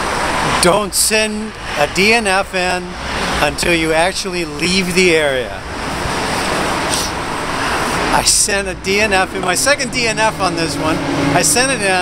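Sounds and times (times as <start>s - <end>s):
road traffic passing: 0.0s - 12.0s.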